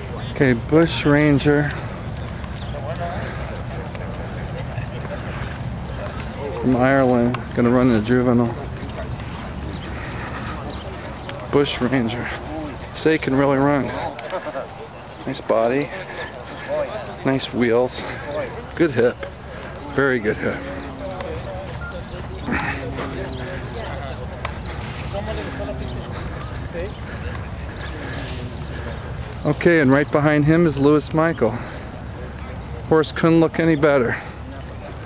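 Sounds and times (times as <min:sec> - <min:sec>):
outdoor noise: 0:00.0 - 0:35.0
people talking in background: 0:00.0 - 0:35.0
hoofbeats on dirt: 0:01.0 - 0:35.0.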